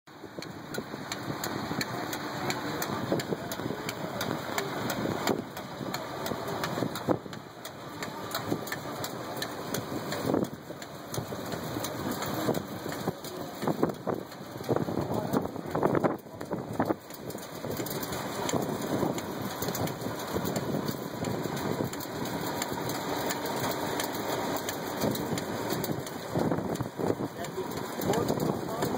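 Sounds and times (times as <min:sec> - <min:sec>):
regular mechanical ticking: 0:00.1 - 0:28.9
tractor engine running: 0:00.1 - 0:28.9
gristmill grinding grain: 0:00.2 - 0:28.9.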